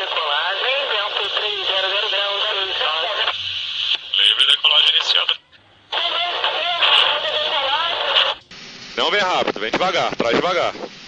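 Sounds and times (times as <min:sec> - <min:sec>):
hissy radio transmission: 0:00.0 - 0:08.4, 0:09.0 - 0:11.0
cockpit background noise: 0:00.0 - 0:10.9.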